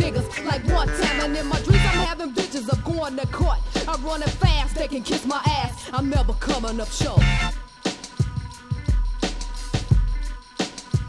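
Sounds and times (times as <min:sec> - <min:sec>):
rapping over drum beat and bass: 0:00.0 - 0:11.0.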